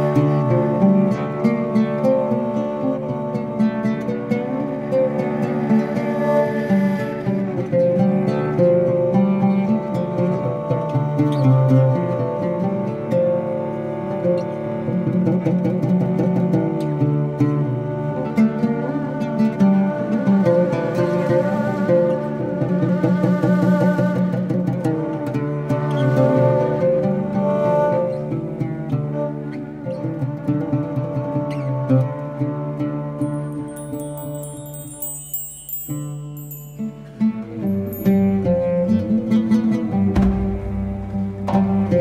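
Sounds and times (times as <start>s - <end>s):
bowed strings: 0.0s - 42.0s
oud plucked: 0.0s - 42.0s.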